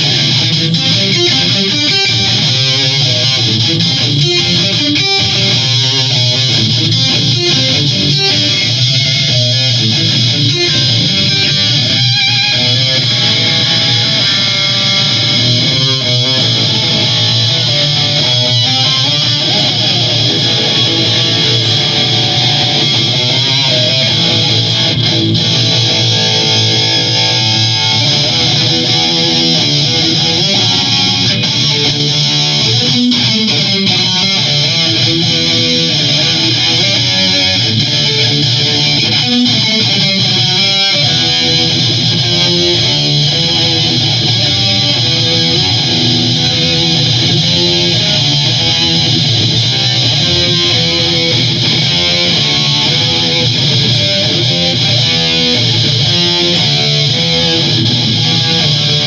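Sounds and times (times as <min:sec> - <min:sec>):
distorted electric guitar riffing: 0:00.0 - 0:59.0.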